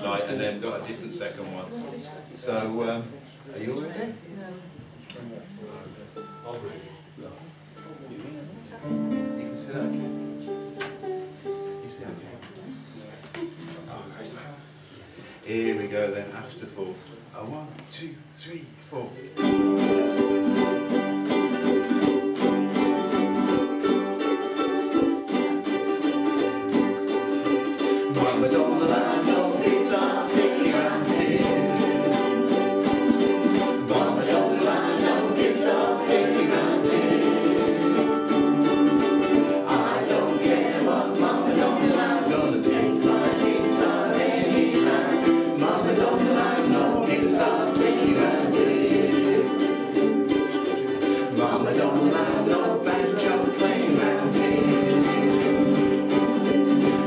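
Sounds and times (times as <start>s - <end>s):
ukuleles strumming: 6.0s - 13.9s, 19.3s - 57.0s
group singing: 19.5s - 57.0s.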